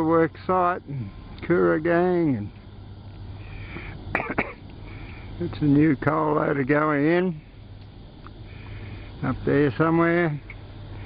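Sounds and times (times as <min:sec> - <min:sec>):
faint low hum: 0:00.0 - 0:11.0
man coughing: 0:04.1 - 0:04.6.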